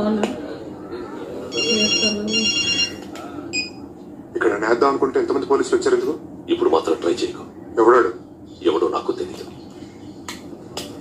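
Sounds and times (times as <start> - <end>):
electronic phone ringing: 1.5 - 3.0.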